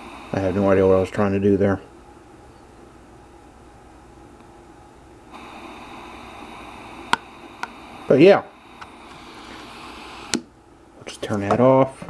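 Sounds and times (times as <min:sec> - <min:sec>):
radio static hiss: 0:00.0 - 0:03.0, 0:05.2 - 0:12.0.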